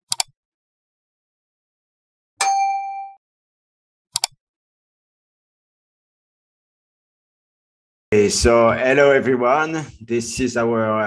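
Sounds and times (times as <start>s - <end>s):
metallic ding: 2.4s - 3.2s.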